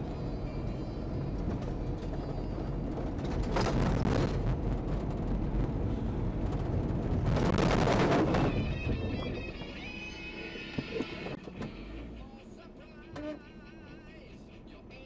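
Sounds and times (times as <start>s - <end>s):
car cabin rumble: 1.2s - 11.8s
music with singing voice: 8.6s - 15.0s.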